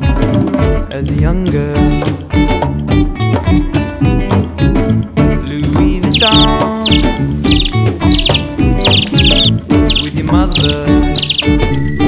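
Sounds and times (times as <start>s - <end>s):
upbeat background music: 0.0s - 12.0s
high bird-like chirps: 6.0s - 12.0s.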